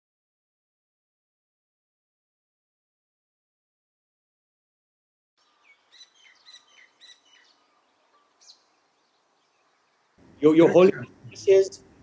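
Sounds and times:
faint birds chirping: 5.4s - 12.0s
light outdoor hiss: 5.4s - 12.0s.

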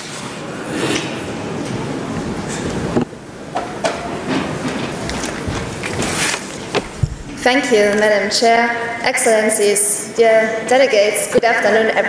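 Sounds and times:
conference hall background noise: 0.0s - 12.0s
soft knocks: 3.0s - 7.4s
rustling: 4.4s - 8.0s.

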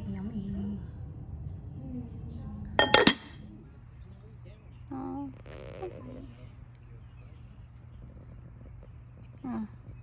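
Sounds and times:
glass clinks: 2.8s - 3.4s.

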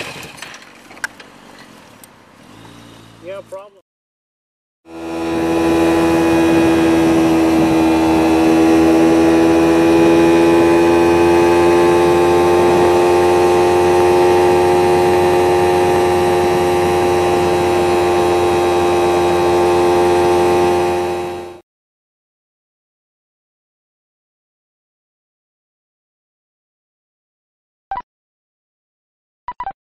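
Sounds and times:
wind and road noise: 0.0s - 3.8s, 4.9s - 21.6s
motorcycle engine at high revs: 2.3s - 3.7s, 4.9s - 21.6s.

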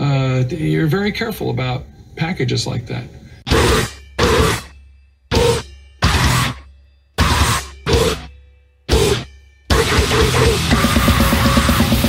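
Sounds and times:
distorted band hits: 5.3s - 6.6s, 7.2s - 8.3s, 8.9s - 12.0s.

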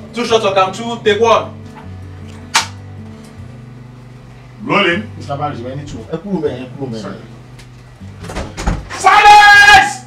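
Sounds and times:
background music: 0.0s - 10.0s
clapperboard snapping shut: 2.5s - 2.8s.

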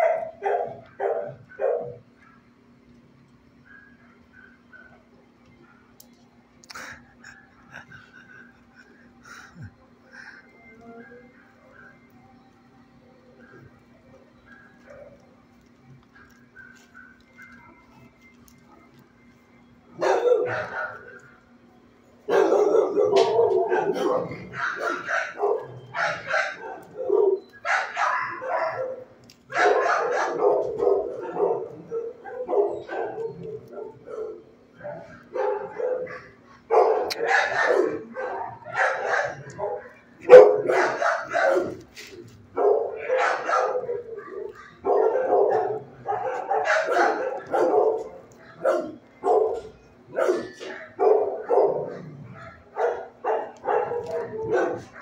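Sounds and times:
dogs barking: 0.0s - 10.4s, 13.2s - 21.6s, 22.2s - 55.0s
faint steady hum: 0.0s - 55.0s.

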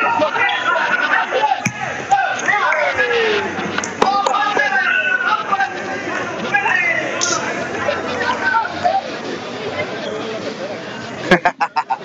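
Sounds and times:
crowd voices in a large hall: 0.0s - 12.0s.

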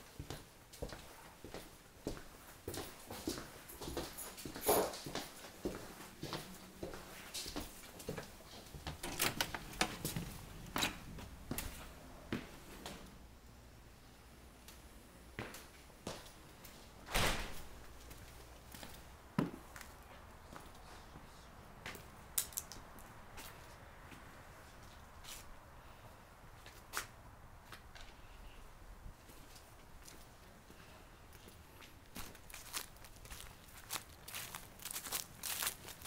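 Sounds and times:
footsteps on wood floor: 0.2s - 12.6s.

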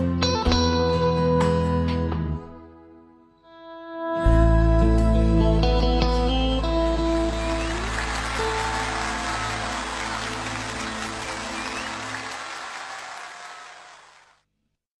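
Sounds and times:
band playing: 6.6s - 14.0s
audience applauding: 7.0s - 14.4s.

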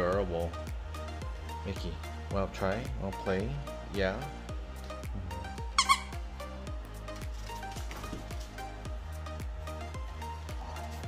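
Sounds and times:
background music with steady beat: 0.0s - 11.0s
dog toy squeaker squeaks: 5.8s - 6.2s.

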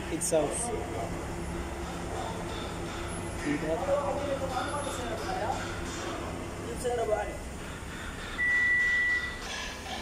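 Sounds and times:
low background hum: 0.0s - 10.0s
high-pitched electronic beep: 8.4s - 9.4s.

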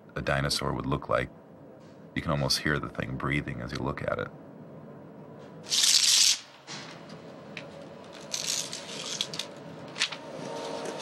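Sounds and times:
film print ripping hiss: 5.7s - 6.5s, 8.2s - 11.0s
paper rustling and scraping: 8.2s - 11.0s.

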